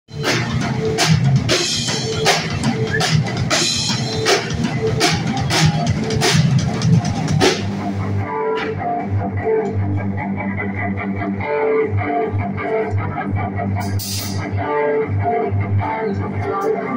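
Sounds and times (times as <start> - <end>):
drum kit with cymbal crashes: 0.1 - 9.2, 13.8 - 14.6
bass guitar: 0.1 - 16.9
electric guitar: 0.1 - 16.9.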